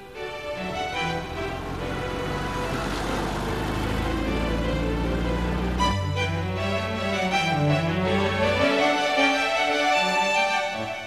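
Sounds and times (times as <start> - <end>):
background music: 0.0 - 11.0
car engine driving past: 0.4 - 7.2.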